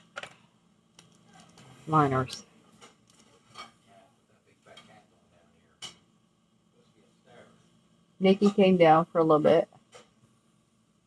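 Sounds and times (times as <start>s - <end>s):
woman speaking: 1.9s - 2.4s, 8.2s - 9.7s.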